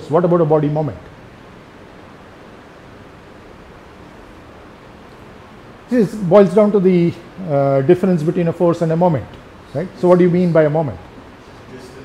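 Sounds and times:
room background hiss: 0:00.0 - 0:12.0.

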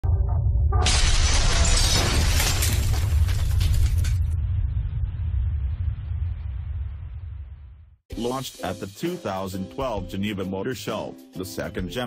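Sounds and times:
deep rumble: 0:00.0 - 0:08.0
glass shattering crash: 0:00.8 - 0:04.4.

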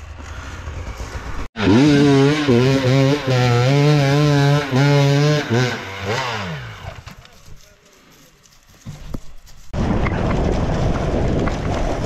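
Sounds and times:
dirt bike engine revving: 0:00.0 - 0:07.1.

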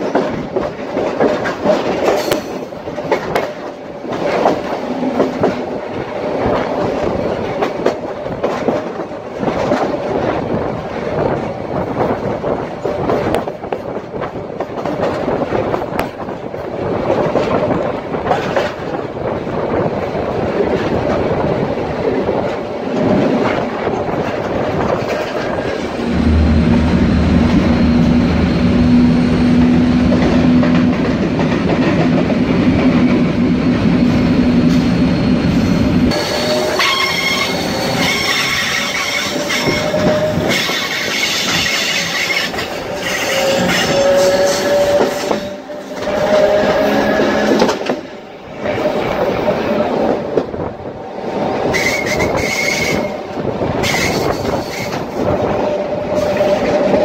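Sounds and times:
train wheels clicking over rail joints: 0:00.0 - 0:50.7
steady low hum: 0:26.0 - 0:30.1
train wheels squealing: 0:34.6 - 0:47.7, 0:51.7 - 0:55.2.

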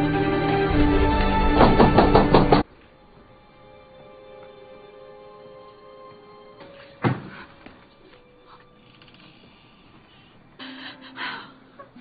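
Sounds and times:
background music: 0:00.0 - 0:09.7
knocks on a door: 0:01.6 - 0:02.6.

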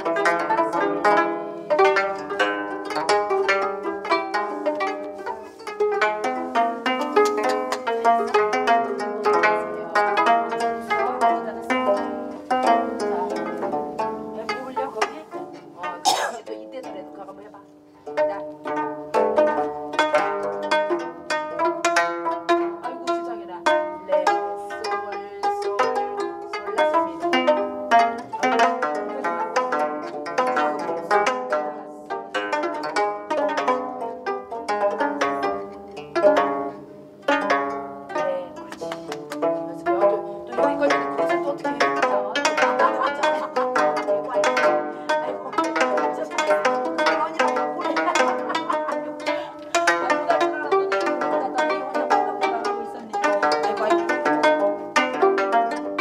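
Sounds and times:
plucked zithers playing melody: 0:00.0 - 0:56.0.

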